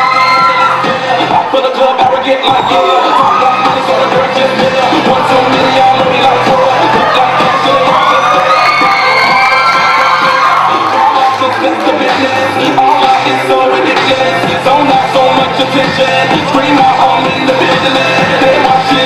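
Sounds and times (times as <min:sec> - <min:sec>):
audience cheering and whooping: 0:00.0 - 0:01.6, 0:02.4 - 0:04.2, 0:04.9 - 0:12.3
hip-hop backing track: 0:00.0 - 0:19.0.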